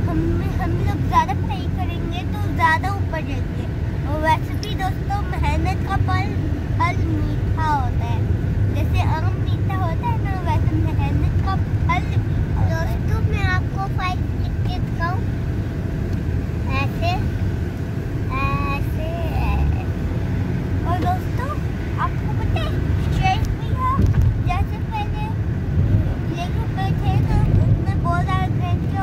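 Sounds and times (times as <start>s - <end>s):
children's voices: 0.0s - 15.3s, 20.8s - 29.0s
car cabin rumble: 0.0s - 29.0s.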